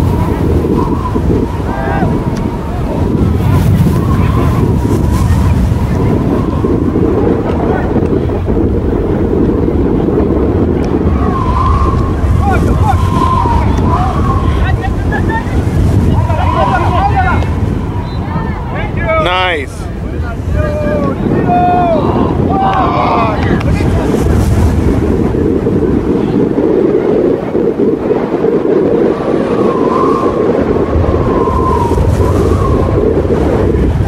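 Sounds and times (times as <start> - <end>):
wind buffeting microphone: 0.0 - 34.0
people shouting: 16.0 - 19.6.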